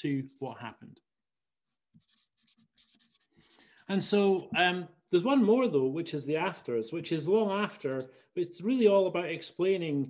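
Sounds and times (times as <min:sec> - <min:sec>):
marker scratching on paper: 0:00.0 - 0:00.8, 0:01.7 - 0:04.5, 0:07.3 - 0:08.1.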